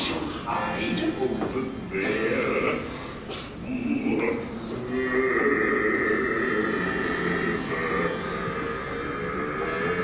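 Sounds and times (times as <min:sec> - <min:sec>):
person singing: 0:00.5 - 0:10.0
orchestral music sustained chords: 0:03.7 - 0:10.0.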